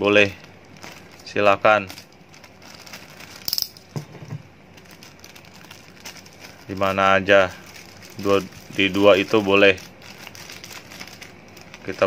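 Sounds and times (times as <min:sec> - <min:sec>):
plastic bag crinkling: 0:00.0 - 0:12.0
soft knocks: 0:03.9 - 0:04.5.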